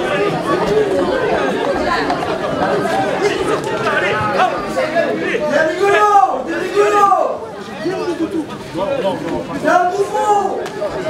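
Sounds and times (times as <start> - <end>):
men arguing over one another: 3.2 - 10.7.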